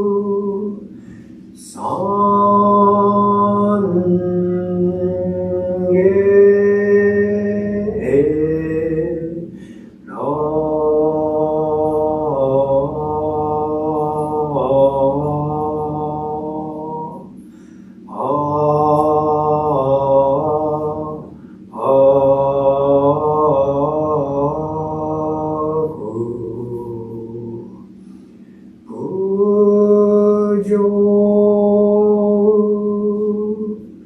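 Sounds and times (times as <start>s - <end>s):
man chanting: 0.0s - 28.0s, 28.9s - 34.0s
breaths: 0.9s - 1.6s, 9.5s - 10.1s, 17.3s - 18.1s, 21.3s - 21.7s, 27.8s - 28.9s.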